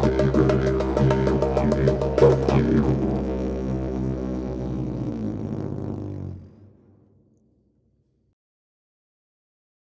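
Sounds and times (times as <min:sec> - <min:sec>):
didgeridoo drone: 0:00.0 - 0:07.1.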